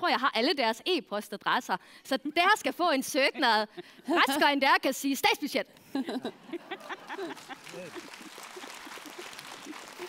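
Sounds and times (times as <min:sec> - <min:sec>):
audience applauding: 0:06.8 - 0:10.0.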